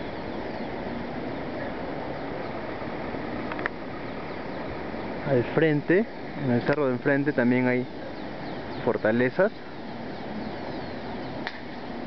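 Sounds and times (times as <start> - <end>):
faint bird chirps: 0.0 - 2.6, 3.4 - 12.0.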